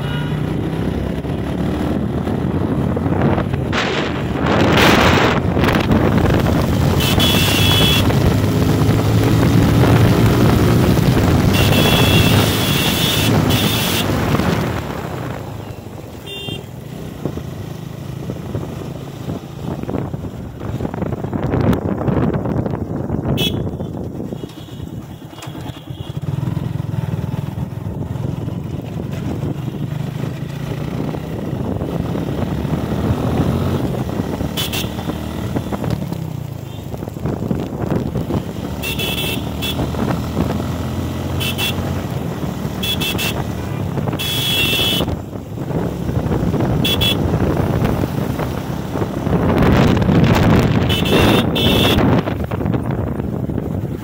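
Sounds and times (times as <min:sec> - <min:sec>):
motorcycle engine running: 0:00.0 - 0:54.0
wind rushing over microphone: 0:00.5 - 0:16.0, 0:16.9 - 0:24.4, 0:26.3 - 0:38.9, 0:39.5 - 0:41.3, 0:41.9 - 0:54.0.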